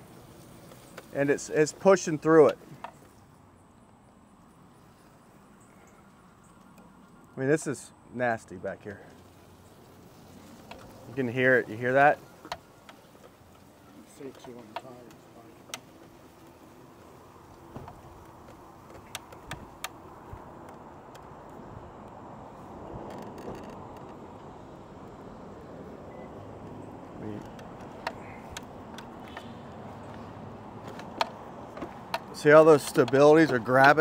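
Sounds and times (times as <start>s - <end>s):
electric scooter running: 9.2s - 23.1s
sharp clicks: 30.9s - 34.0s.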